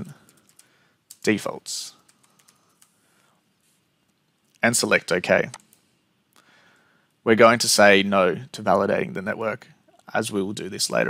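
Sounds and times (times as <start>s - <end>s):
computer keyboard keystrokes: 0.2s - 1.3s, 2.0s - 3.0s.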